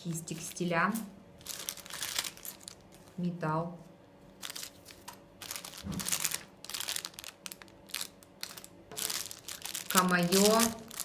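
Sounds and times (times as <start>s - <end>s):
plastic bag crinkling: 1.4s - 3.2s, 4.4s - 11.0s.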